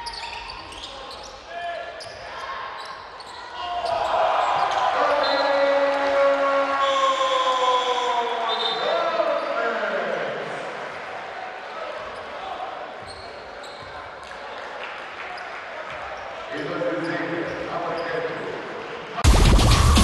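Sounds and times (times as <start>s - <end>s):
sneakers squeaking on hardwood: 0.0s - 1.4s, 13.0s - 14.2s.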